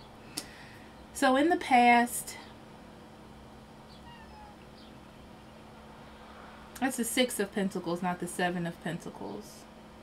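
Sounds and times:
low room hum: 0.0s - 10.0s
faint short animal call: 3.9s - 4.7s.

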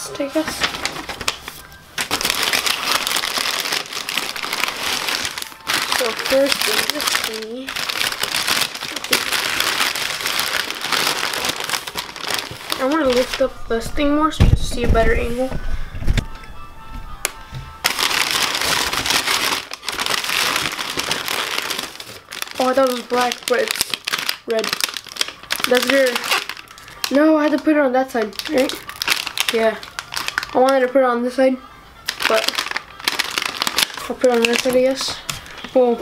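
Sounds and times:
packing paper crackling rustle: 0.0s - 16.3s, 17.8s - 31.0s, 32.0s - 36.0s.

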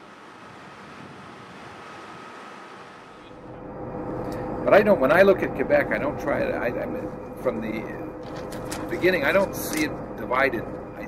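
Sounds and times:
bus rumbling inside cabin: 0.0s - 11.0s
steady rushing noise: 0.0s - 11.0s.

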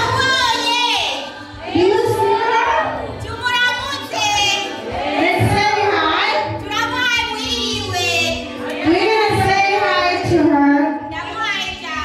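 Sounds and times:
women singing through pa: 0.0s - 12.0s.

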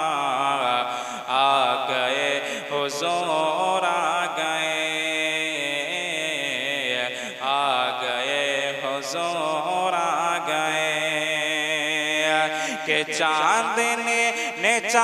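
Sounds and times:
man singing into microphone: 0.0s - 15.0s.

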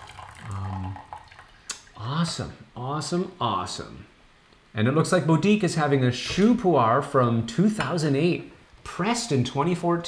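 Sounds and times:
tea trickling into glass pitcher: 0.0s - 1.7s.

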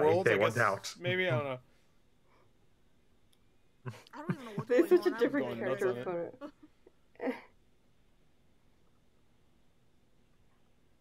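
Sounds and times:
person speaking: 0.0s - 1.4s, 3.9s - 6.2s.

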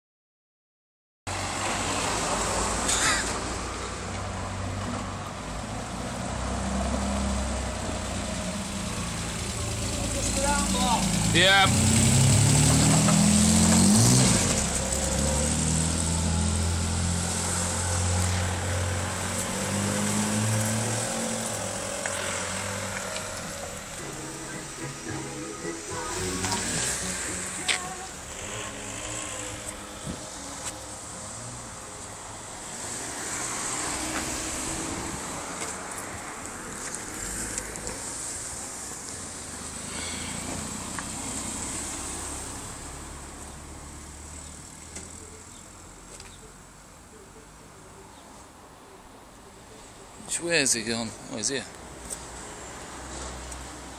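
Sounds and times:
trike engine humming: 6.0s - 35.0s.

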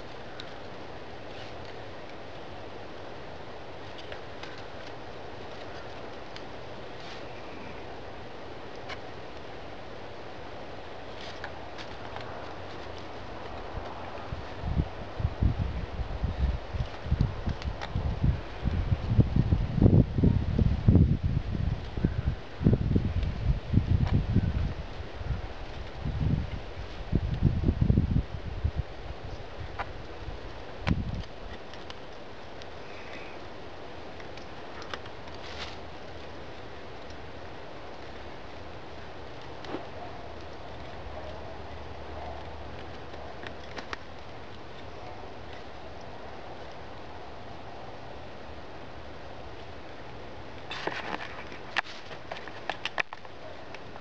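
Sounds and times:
cord wrapping around sticks: 8.6s - 19.1s, 29.2s - 46.9s, 49.7s - 53.9s
wind buffeting microphone: 11.6s - 31.6s.

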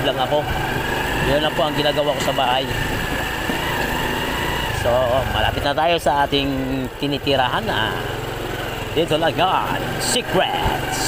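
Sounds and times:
motorbike engine running: 0.0s - 11.0s.

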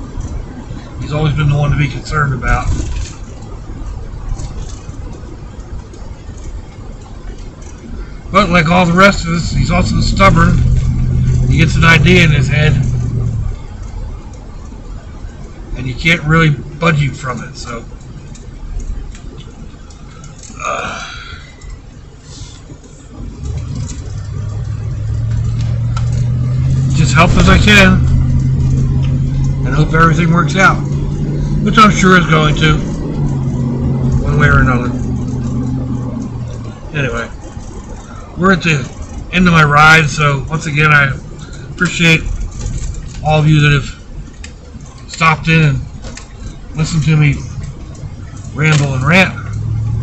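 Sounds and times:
low hum: 0.0s - 15.8s, 16.5s - 39.3s
engine and road rumble in cabin: 0.0s - 50.0s.

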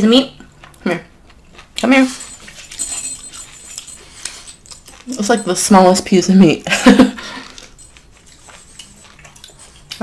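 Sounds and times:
dog licking and smacking: 7.6s - 10.0s.

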